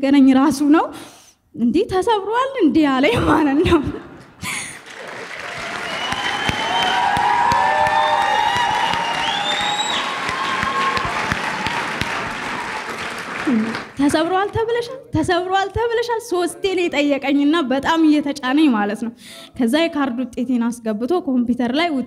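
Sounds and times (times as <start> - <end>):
congregation applauding: 4.5 - 14.5.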